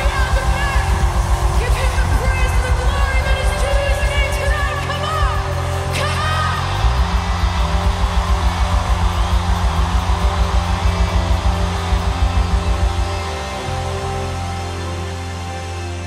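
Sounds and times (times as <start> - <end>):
fast pulsing bass beat: 0.0 - 16.0.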